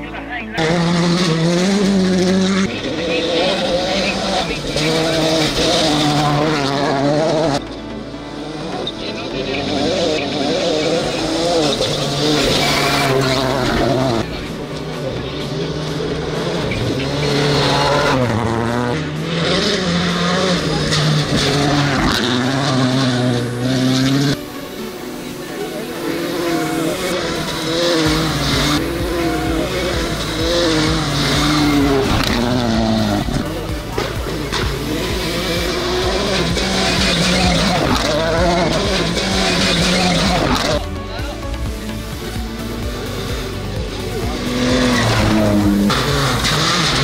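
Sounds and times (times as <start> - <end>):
background music: 0.0 - 47.0
rally car engines revving: 0.0 - 47.0.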